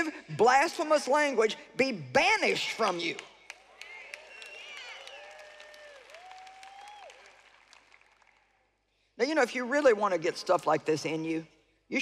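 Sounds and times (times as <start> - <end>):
audience applause: 3.5 - 8.6.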